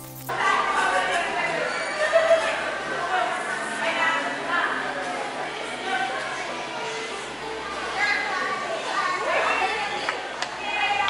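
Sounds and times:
young children playing: 5.2 - 11.0.

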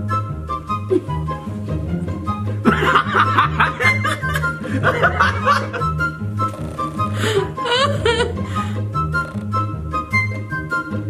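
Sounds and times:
background music with bass line: 0.0 - 11.0
man and woman laughing: 2.6 - 6.0, 7.2 - 8.8.

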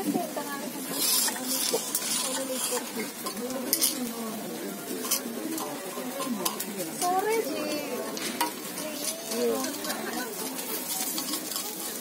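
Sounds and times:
batter sizzling on a hot pan: 0.0 - 12.0
metal pick scraping: 0.8 - 4.1, 5.0 - 12.0.

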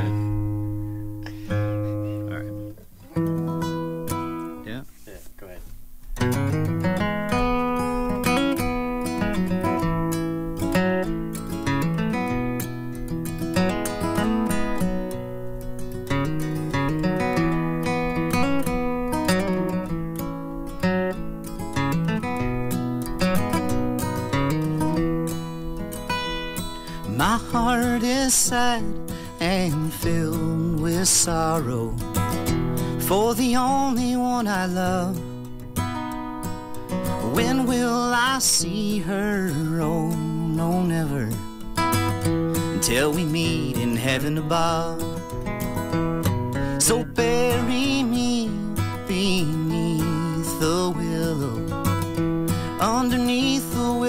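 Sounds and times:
acoustic guitar: 0.0 - 54.0.

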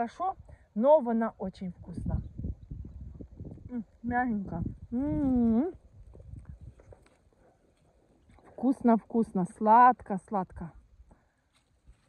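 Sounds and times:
rustling of plant canes: 6.2 - 8.8, 11.3 - 12.0.

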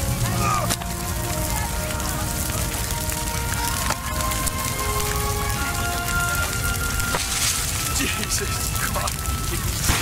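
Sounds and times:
crackling fire: 0.0 - 10.0.

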